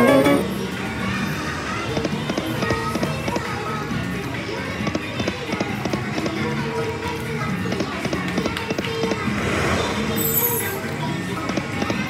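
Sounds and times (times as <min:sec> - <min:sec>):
slot machine electronic music: 0:00.0 - 0:00.6.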